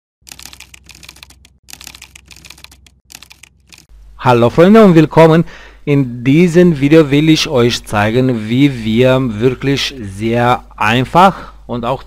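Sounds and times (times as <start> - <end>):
fast typing on keyboard: 0.2 - 3.9.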